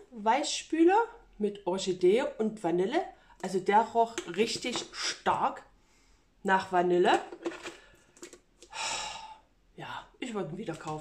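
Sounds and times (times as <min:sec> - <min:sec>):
woman's voice: 0:00.0 - 0:05.7, 0:06.5 - 0:07.4, 0:09.8 - 0:11.0.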